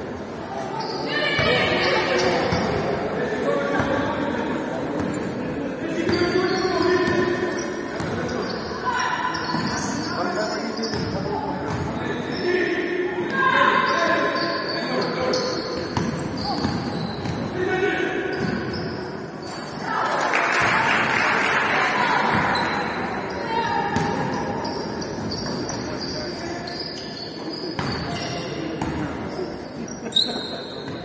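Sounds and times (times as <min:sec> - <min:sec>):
sneakers squeaking on floor: 0:00.6 - 0:03.0, 0:06.0 - 0:12.6, 0:13.3 - 0:17.6, 0:18.3 - 0:19.8, 0:22.2 - 0:31.0.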